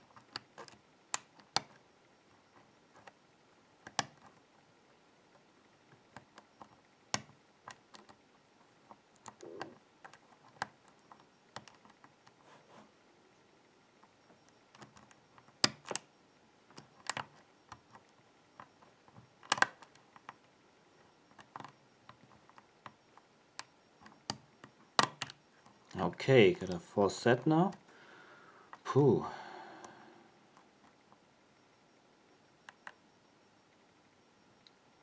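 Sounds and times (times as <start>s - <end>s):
lock pick ticking and scraping: 0.0s - 3.2s, 3.8s - 4.4s, 6.0s - 12.4s, 14.4s - 16.1s, 16.7s - 20.4s, 21.3s - 27.8s
lock pins clicking: 14.7s - 16.1s, 16.7s - 18.2s, 19.4s - 20.3s, 23.6s - 26.0s.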